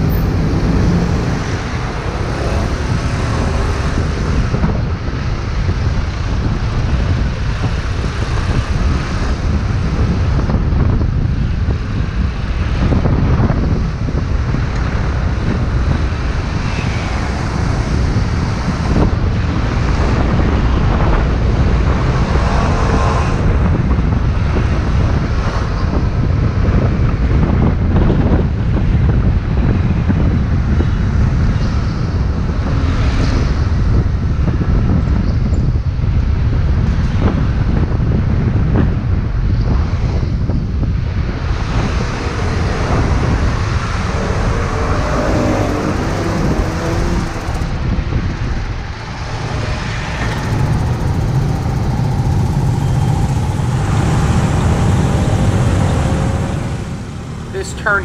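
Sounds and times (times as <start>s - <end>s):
city traffic: 0.0s - 58.0s
wind buffeting microphone: 0.0s - 58.0s
scooter engine: 41.8s - 47.8s, 49.1s - 57.6s.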